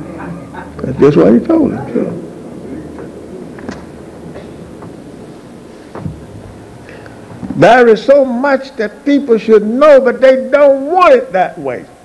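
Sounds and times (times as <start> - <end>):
recording hiss and low hum: 0.0 - 12.0.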